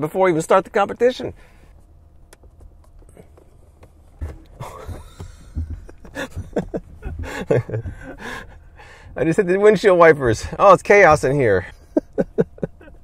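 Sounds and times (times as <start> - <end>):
low cabin hum: 0.0 - 13.0
windshield wipers sweeping: 2.4 - 10.4
man laughing: 4.5 - 8.6, 11.6 - 13.0.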